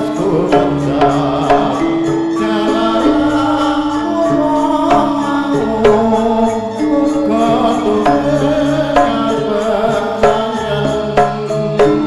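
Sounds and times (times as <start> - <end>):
gong-chimes and metallophones ringing: 0.0 - 12.0
person singing: 0.0 - 12.0.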